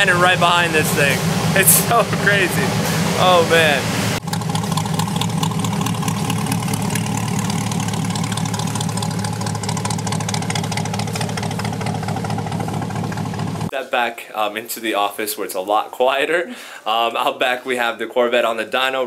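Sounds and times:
loud car engine idling: 0:00.0 - 0:13.7.

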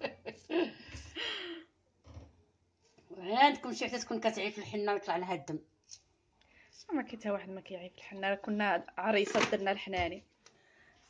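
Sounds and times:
woman sighing: 0:00.5 - 0:01.7.

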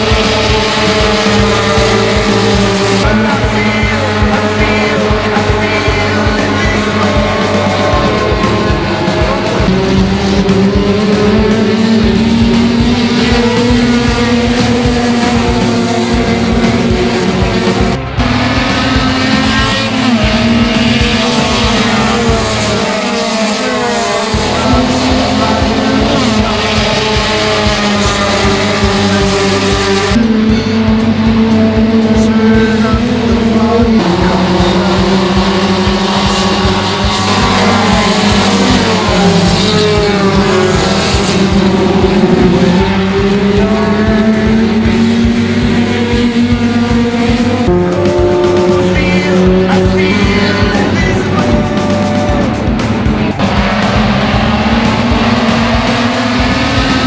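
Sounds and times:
music: 0:00.0 - 0:57.0
race car engines: 0:00.0 - 0:57.0.

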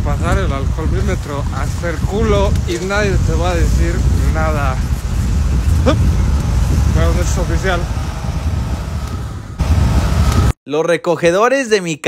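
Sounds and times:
rumble of passing cars: 0:00.0 - 0:10.6.

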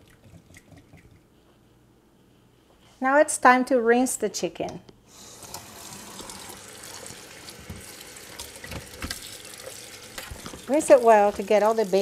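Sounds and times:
faucet water splashing into colander: 0:05.4 - 0:12.0.

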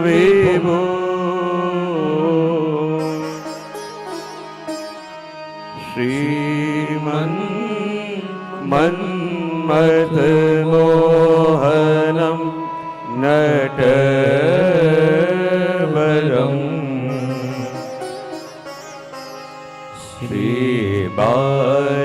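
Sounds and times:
person singing devotional melody: 0:00.0 - 0:22.0.

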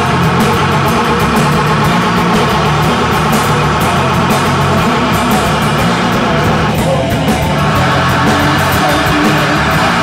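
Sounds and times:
bass guitar: 0:00.0 - 0:10.0
drums fast beat: 0:00.0 - 0:10.0
electric guitars: 0:00.0 - 0:10.0.

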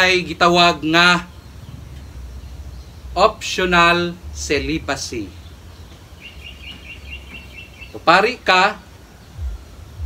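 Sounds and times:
small bird chirping: 0:00.1 - 0:10.0
steady low rumble: 0:01.3 - 0:07.8, 0:08.8 - 0:10.0.

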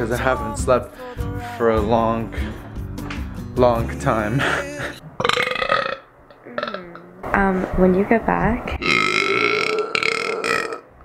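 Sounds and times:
man's long burp: 0:04.5 - 0:07.0, 0:08.8 - 0:10.9.

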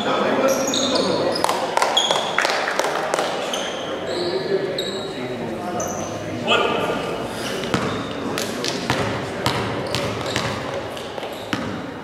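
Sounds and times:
voices echoing in a gym: 0:00.0 - 0:12.0.

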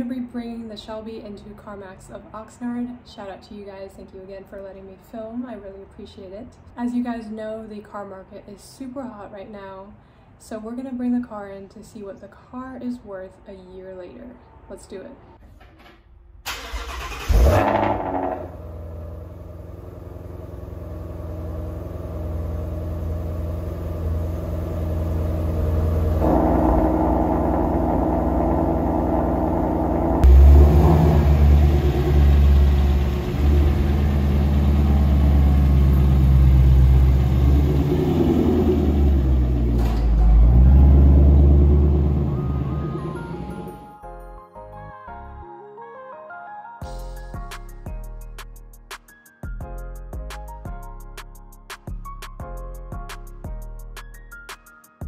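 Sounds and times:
car engine starting and idling: 0:16.4 - 0:43.8
loud deep exhaust idle: 0:17.3 - 0:43.7.

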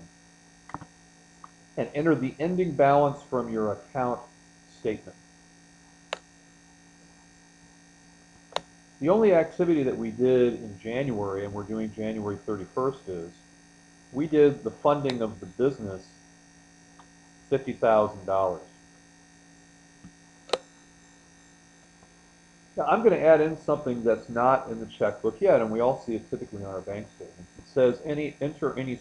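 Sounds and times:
electrical mains hum: 0:00.0 - 0:29.0
sharp click: 0:06.1 - 0:06.3, 0:08.5 - 0:08.7, 0:15.0 - 0:15.3, 0:20.0 - 0:20.8
sharp clicks: 0:08.5 - 0:08.7.

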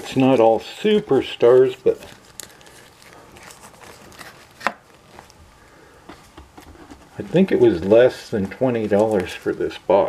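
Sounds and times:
photos rustling in box: 0:00.0 - 0:05.4, 0:06.0 - 0:10.0.

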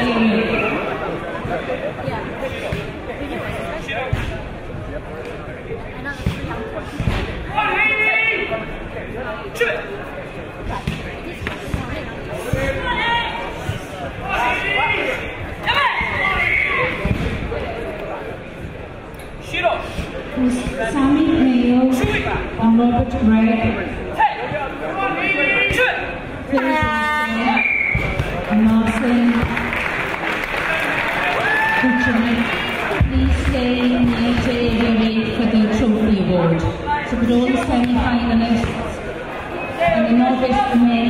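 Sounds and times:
crowd chatter: 0:00.0 - 0:41.0.

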